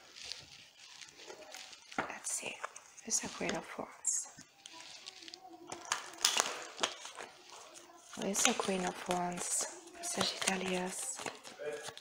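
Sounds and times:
cards being shuffled: 0.0 - 12.0
faint murmuring voice: 0.0 - 12.0.

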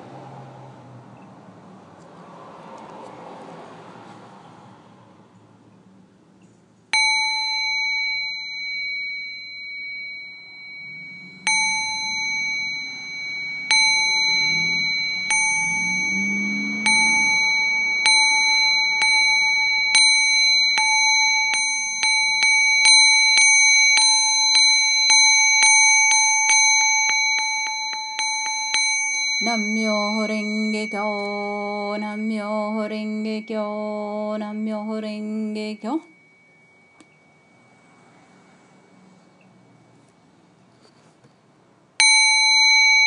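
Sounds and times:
altar bell ringing: 6.9 - 40.0, 42.0 - 43.0.

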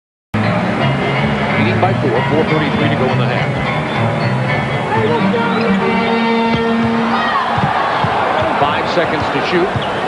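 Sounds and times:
arena crowd noise: 0.4 - 10.0
sneakers squeaking: 3.4 - 8.6, 9.7 - 10.0.

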